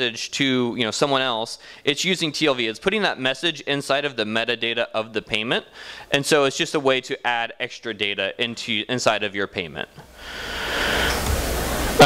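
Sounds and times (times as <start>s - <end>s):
rushing hiss with low rumble: 10.1s - 12.0s.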